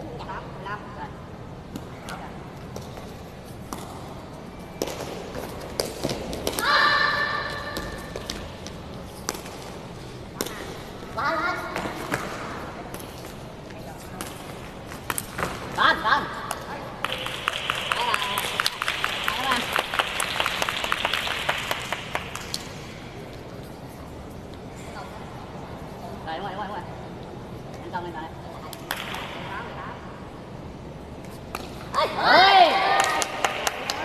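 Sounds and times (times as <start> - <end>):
shouts echoing in a hall: 6.5 - 8.3, 15.8 - 22.9, 31.9 - 34.0.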